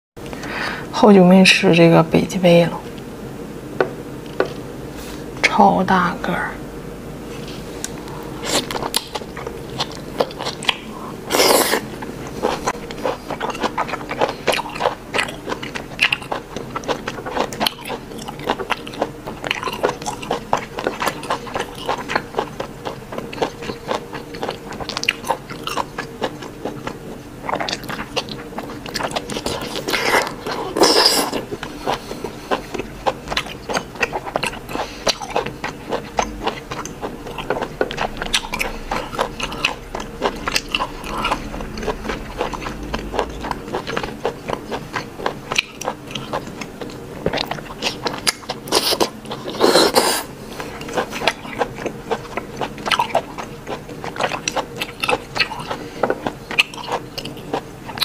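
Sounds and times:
close chewing and biting: 0:07.8 - 0:58.0.

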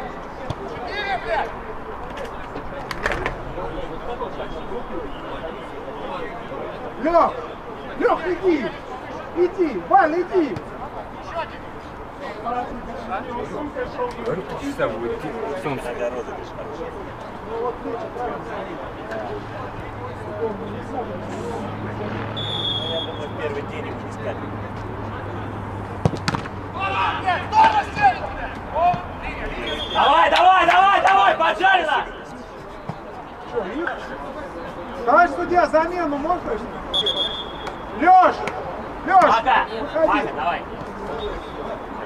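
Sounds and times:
referee whistle blast: 0:22.4 - 0:23.3, 0:29.6 - 0:30.2, 0:36.9 - 0:37.9
ball kicked thud: 0:26.0 - 0:26.6
players shouting: 0:26.0 - 0:32.4, 0:35.0 - 0:41.8.

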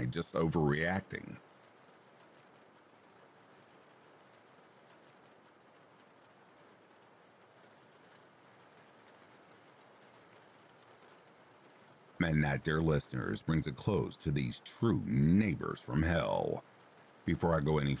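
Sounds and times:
faint steady rain hiss: 0:00.0 - 0:18.0.

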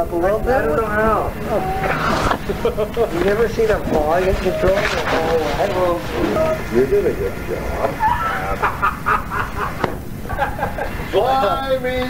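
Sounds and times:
low background noise: 0:00.0 - 0:12.0
people laughing: 0:00.4 - 0:12.0.

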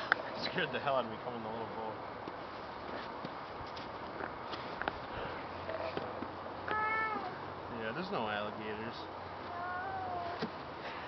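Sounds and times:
small child whining: 0:06.6 - 0:07.5, 0:09.4 - 0:10.5.

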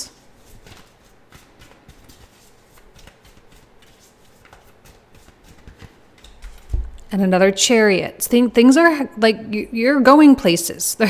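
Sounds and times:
cards being shuffled: 0:00.1 - 0:07.1.

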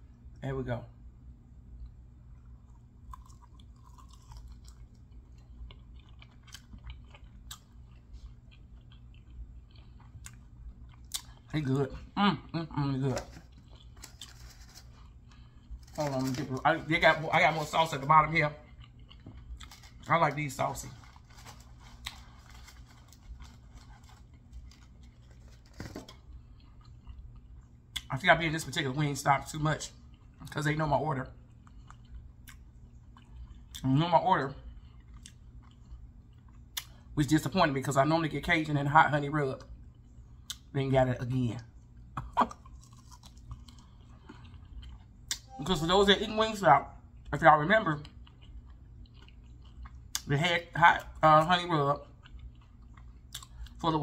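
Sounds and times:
low steady hum: 0:00.0 - 0:54.0
person chewing: 0:01.8 - 0:28.1, 0:31.4 - 0:33.8, 0:34.6 - 0:37.1, 0:41.8 - 0:45.6, 0:47.1 - 0:50.3, 0:52.0 - 0:53.8
soft clicks and crunches: 0:13.0 - 0:18.0, 0:19.1 - 0:27.2.

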